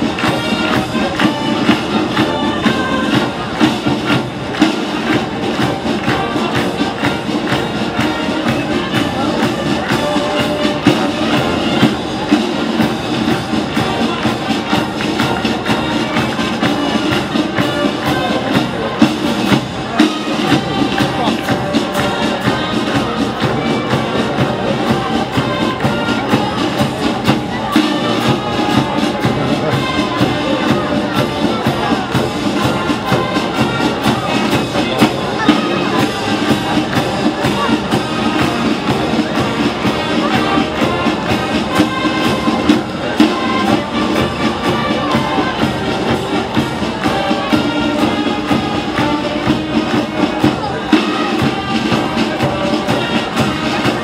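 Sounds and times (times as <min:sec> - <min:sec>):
marching brass band playing: 0:00.0 - 0:54.0.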